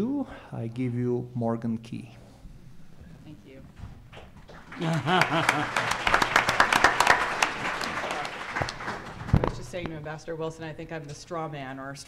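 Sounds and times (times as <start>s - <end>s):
audience applauding: 4.1s - 9.5s.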